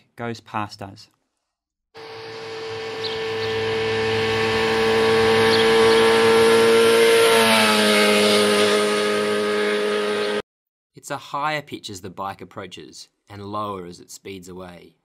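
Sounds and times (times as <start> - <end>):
motorcycle passing by: 2.0 - 10.4.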